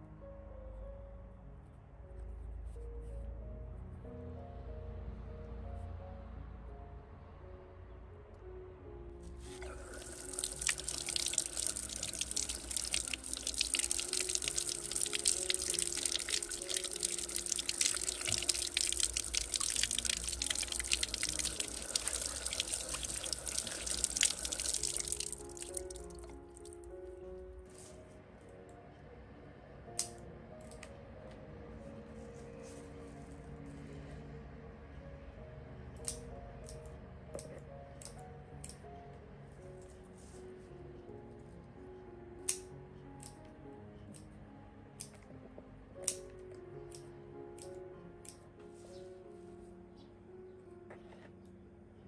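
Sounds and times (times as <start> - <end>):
background music: 0.0 - 52.0
water running from a hose: 9.4 - 26.3
water splashing over hands: 9.8 - 26.3.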